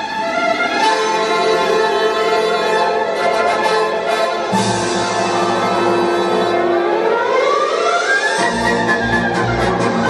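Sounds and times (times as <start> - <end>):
orchestral music over loudspeakers: 0.0 - 10.0
rising siren-like tone: 5.1 - 10.0.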